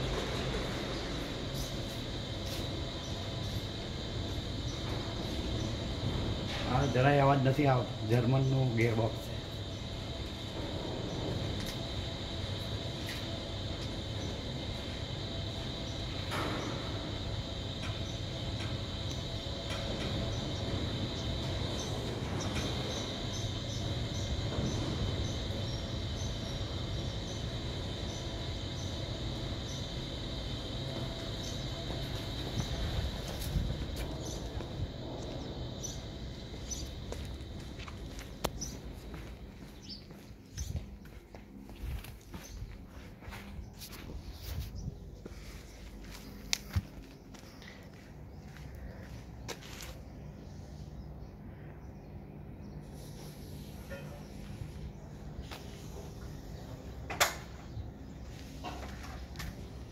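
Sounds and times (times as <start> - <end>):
machine running: 0.0 - 39.8.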